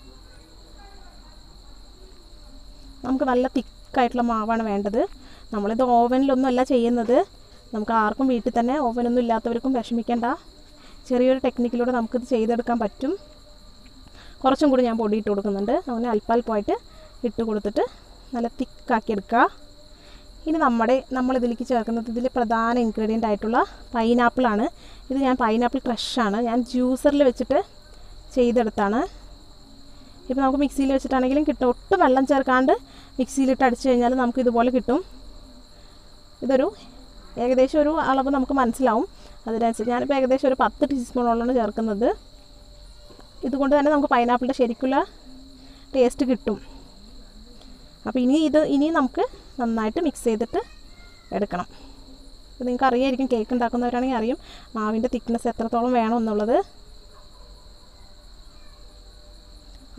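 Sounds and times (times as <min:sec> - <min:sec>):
woman speaking: 0:00.0 - 0:13.3, 0:14.4 - 0:19.6, 0:20.4 - 0:27.7, 0:28.3 - 0:29.2, 0:30.3 - 0:35.2, 0:36.4 - 0:42.2, 0:43.4 - 0:46.8, 0:48.0 - 0:50.7, 0:51.3 - 0:51.9, 0:52.6 - 0:56.7.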